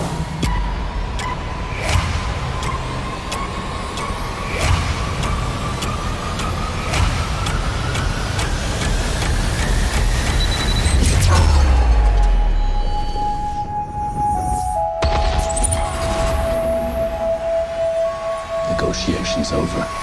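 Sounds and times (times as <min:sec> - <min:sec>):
rising tone: 0:09.9 - 0:20.0.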